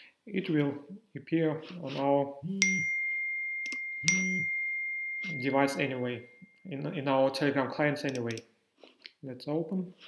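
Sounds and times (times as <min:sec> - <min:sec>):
bell-like notification chime: 0:02.6 - 0:07.1.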